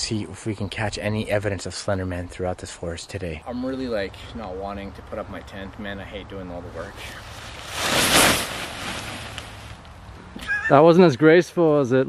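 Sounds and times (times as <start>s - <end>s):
tent springing open whoosh: 7.2s - 9.8s.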